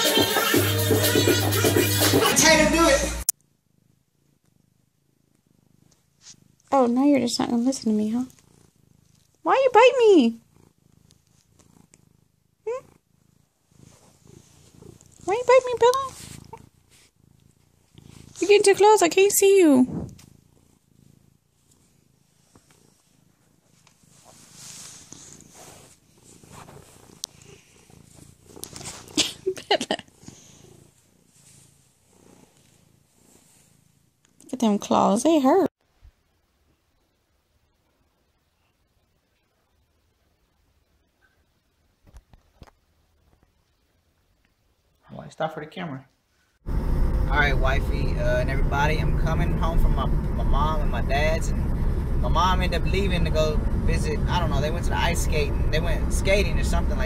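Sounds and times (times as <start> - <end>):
cat purring: 0.0 - 45.4, 46.3 - 57.0.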